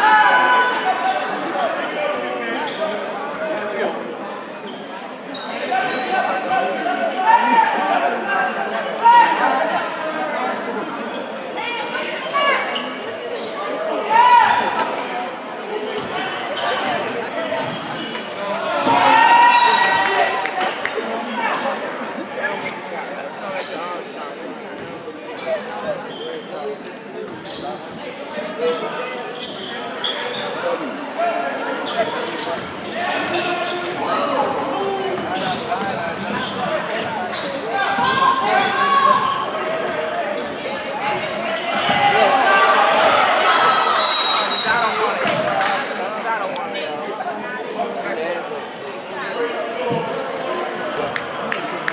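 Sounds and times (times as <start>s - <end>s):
spectators' voices echoing: 0.0s - 51.9s.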